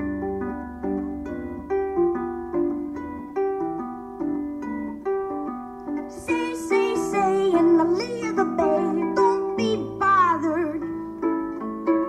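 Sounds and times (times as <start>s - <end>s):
solo harp playing: 0.0s - 12.0s.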